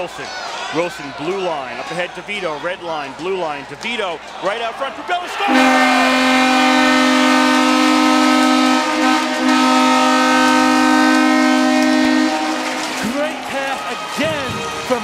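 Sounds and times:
crowd cheering and shouting: 0:00.0 - 0:08.0, 0:11.8 - 0:15.0
arena goal horn: 0:05.4 - 0:13.8.

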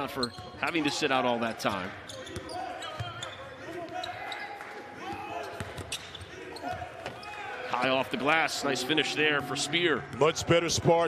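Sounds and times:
sneakers squeaking: 0:00.0 - 0:01.0, 0:01.6 - 0:07.5
indoor hall background: 0:00.0 - 0:11.0.

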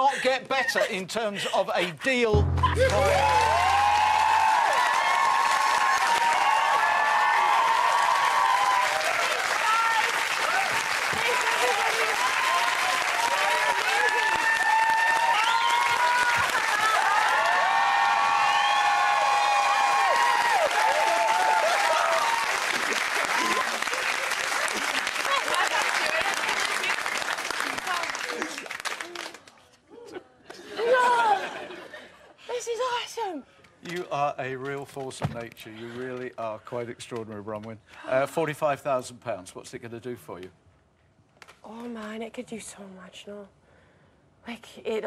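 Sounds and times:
audience clapping: 0:02.4 - 0:29.7
people shouting and whooping: 0:02.6 - 0:22.6.

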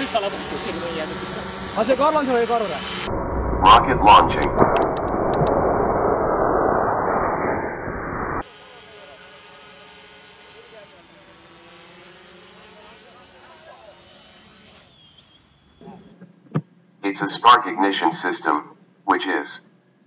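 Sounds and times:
drone motors humming: 0:00.0 - 0:16.3
loud rushing noise: 0:02.4 - 0:08.4.

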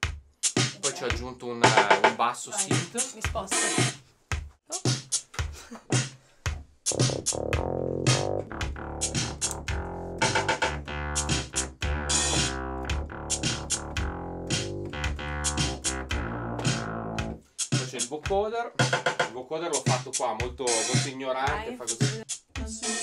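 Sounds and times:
electronic drum machine groove: 0:00.0 - 0:23.0
synth bass line: 0:06.9 - 0:17.4.

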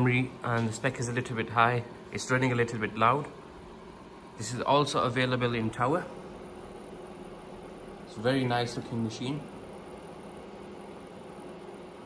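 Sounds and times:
server cooling fans: 0:00.0 - 0:12.0.

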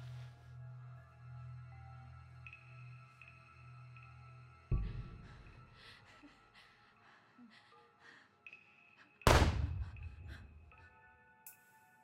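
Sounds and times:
handgun shot: 0:09.3 - 0:09.9.

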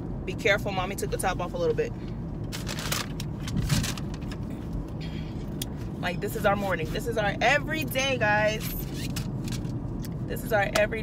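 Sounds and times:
car cabin engine hum: 0:00.0 - 0:11.0.

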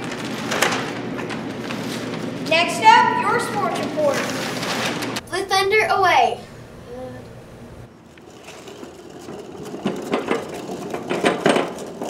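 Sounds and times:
cart wheels rattling over asphalt: 0:08.2 - 0:12.0.

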